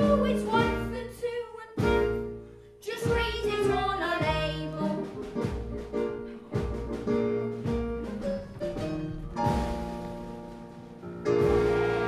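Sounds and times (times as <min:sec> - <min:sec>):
bass line: 0:03.2 - 0:12.0
live band playing: 0:04.8 - 0:12.0.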